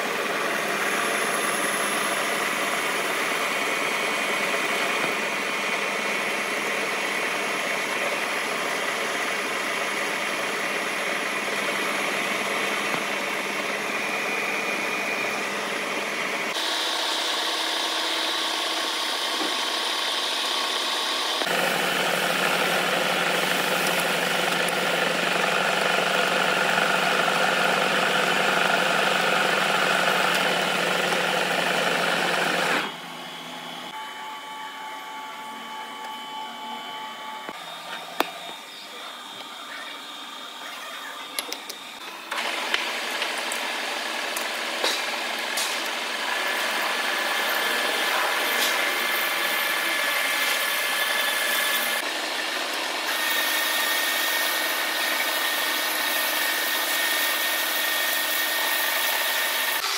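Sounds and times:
metal lathe cutting steel: 0.0s - 59.9s.

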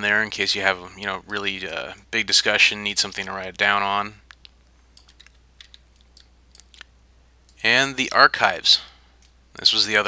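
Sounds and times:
low electrical hum: 0.0s - 10.0s
faint small clicks: 4.2s - 6.9s.

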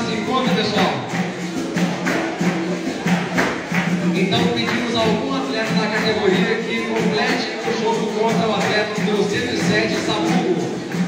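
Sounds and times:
atabaque drum strokes: 0.0s - 11.0s.

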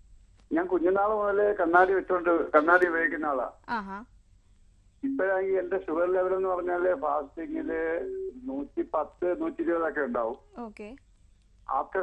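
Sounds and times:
person talking over telephone: 0.5s - 4.0s, 5.0s - 10.9s, 11.7s - 12.0s.

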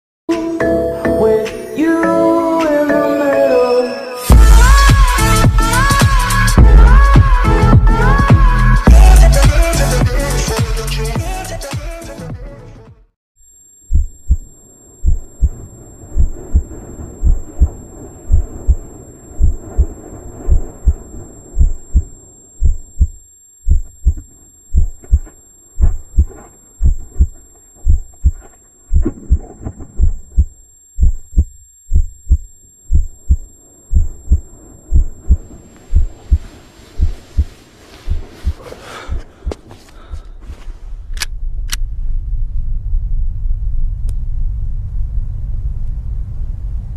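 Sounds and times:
heartbeat thumps: 4.3s - 10.2s, 13.9s - 15.6s, 16.2s - 40.2s
dark rumbling drone: 40.8s - 46.9s.

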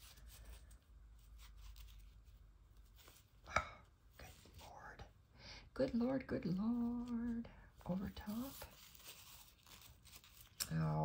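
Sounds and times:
thread rustling and scratching: 0.0s - 3.4s, 6.5s - 11.0s.

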